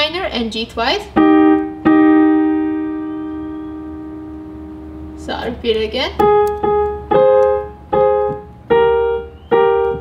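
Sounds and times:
piano chord ringing: 1.1 - 10.0.

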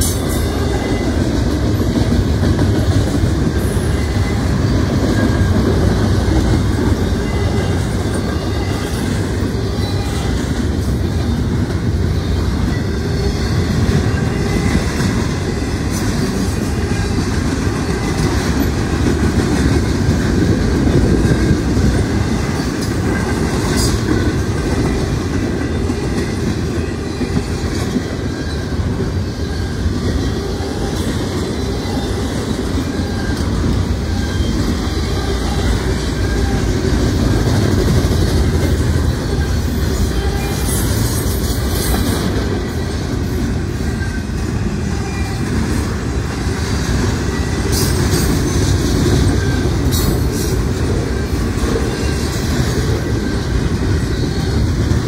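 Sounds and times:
freight train rumbling past: 0.0 - 55.0
high-pitched wheel squeals: 3.3 - 19.1, 23.6 - 46.2.

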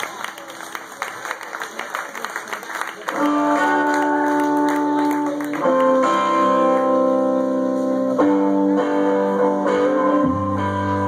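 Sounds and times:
electric guitars and bass chords: 3.2 - 11.0.

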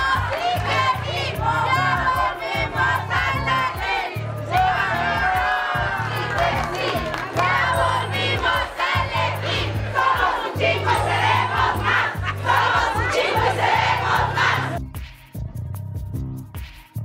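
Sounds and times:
crowd shouting and cheering: 0.0 - 14.8.

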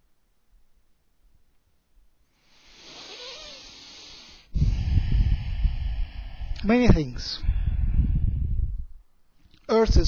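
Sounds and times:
long breath with whistle: 2.4 - 6.6.

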